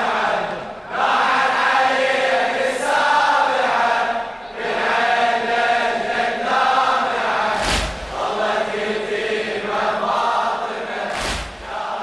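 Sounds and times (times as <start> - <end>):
mourning chant sung in long lines: 0.0 - 12.0
brief thump: 7.6 - 8.2, 11.1 - 11.7.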